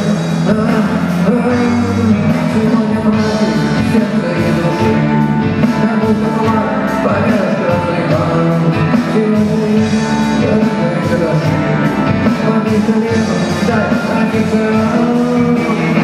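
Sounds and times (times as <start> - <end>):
live rock band playing: 0.0 - 16.0.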